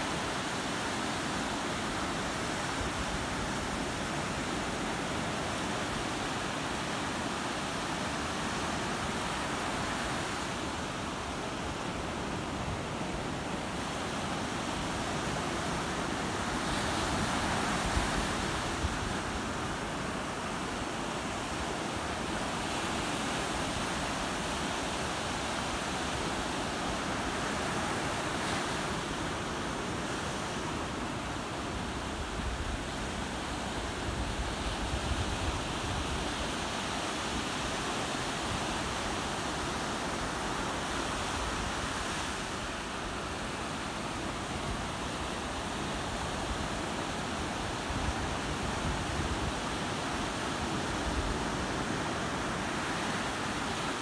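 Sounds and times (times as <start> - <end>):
waves breaking on a beach: 0.0 - 54.0.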